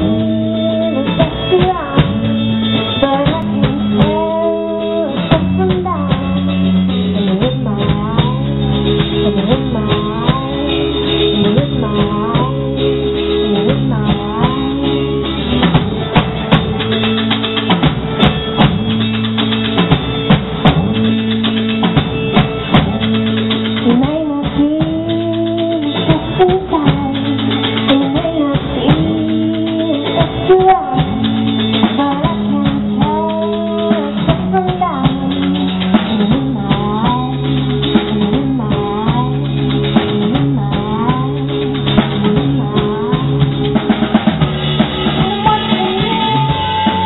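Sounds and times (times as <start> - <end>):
bass: 0.0 - 47.0
drum kit: 0.0 - 47.0
strummed acoustic guitar: 0.0 - 47.0
man singing lead: 45.2 - 47.0.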